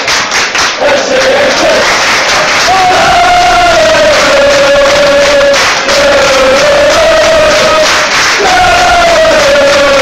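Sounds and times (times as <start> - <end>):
football crowd chanting: 0.7 - 10.0.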